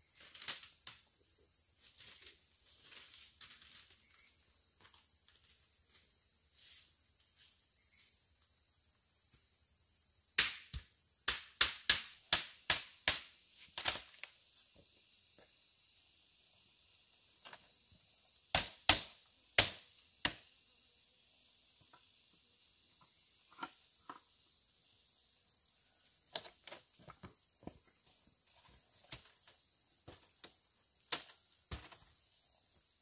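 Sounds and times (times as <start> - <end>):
insect chorus: 0.0 - 33.0
sharp knocks on bamboo: 10.4 - 14.2, 18.5 - 20.5, 31.1 - 32.1.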